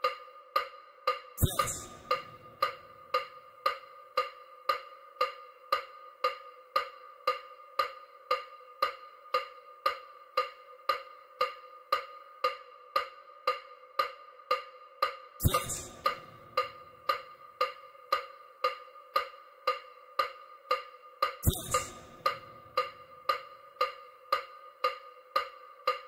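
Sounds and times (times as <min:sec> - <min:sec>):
synthetic wood block ticks: 0:00.0 - 0:14.2, 0:15.4 - 0:26.0.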